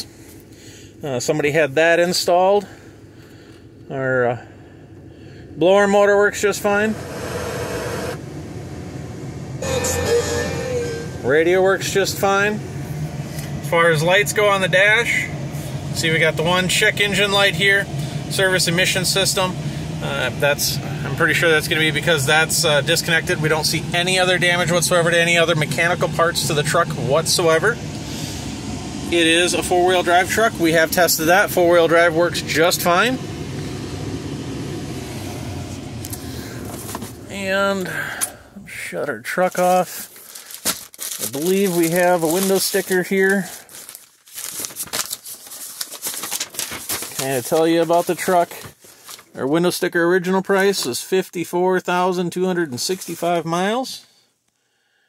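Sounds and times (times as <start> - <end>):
diesel engine idling: 2.8 - 40.6
heater blower air rush: 4.3 - 40.2, 41.2 - 43.7
car radio station: 5.5 - 40.2, 41.2 - 43.5, 46.6 - 54.0.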